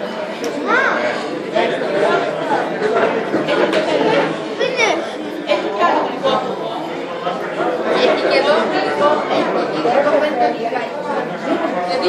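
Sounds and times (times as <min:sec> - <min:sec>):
hubbub of overlapping chatter: 0:00.0 - 0:12.0.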